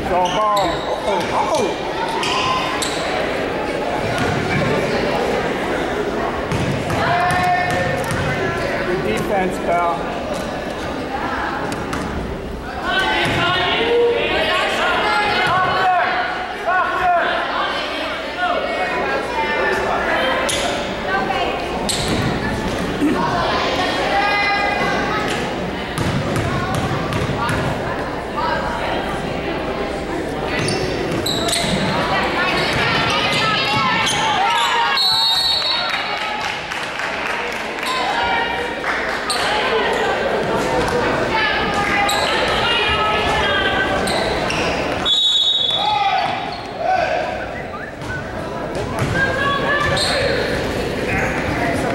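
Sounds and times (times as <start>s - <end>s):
people talking and calling out: 0.0s - 51.9s
referee whistle blasts: 34.6s - 35.9s, 45.0s - 46.6s.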